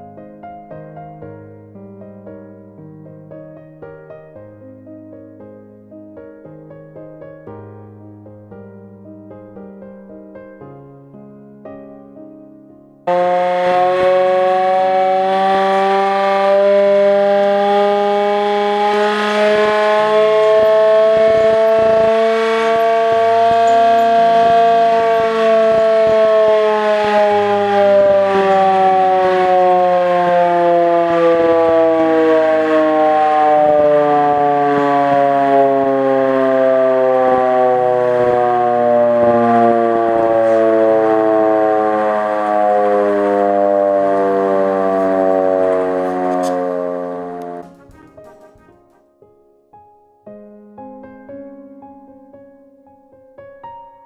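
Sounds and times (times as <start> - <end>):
hand-cranked siren wailing: 13.1 - 49.1.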